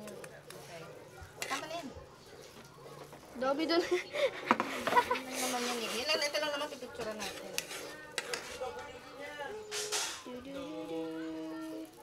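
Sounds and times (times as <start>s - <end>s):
metal ladle scraping a wok: 7.1s - 8.7s, 9.7s - 10.3s.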